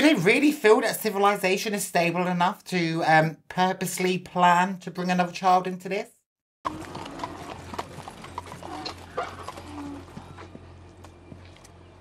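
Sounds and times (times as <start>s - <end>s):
horse hooves on pavement: 6.7s - 12.0s.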